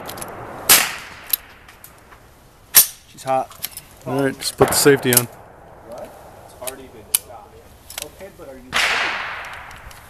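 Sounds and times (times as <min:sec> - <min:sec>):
rifle shot echoing: 0:00.0 - 0:01.8, 0:04.6 - 0:07.2, 0:08.7 - 0:09.9.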